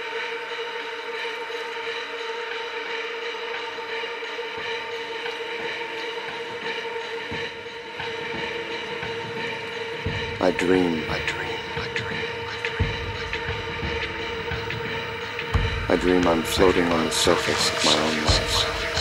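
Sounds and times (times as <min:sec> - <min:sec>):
synthesizer drone: 0:00.0 - 0:19.0.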